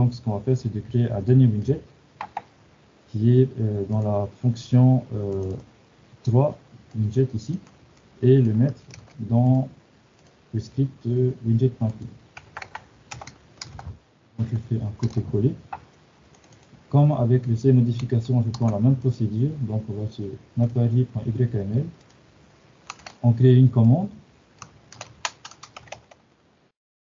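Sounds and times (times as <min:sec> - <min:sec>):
keyboard keys clicking: 0:02.2 - 0:02.5, 0:07.6 - 0:09.2, 0:11.8 - 0:13.9, 0:15.0 - 0:16.7, 0:17.4 - 0:18.8, 0:22.9 - 0:23.2, 0:24.6 - 0:26.2.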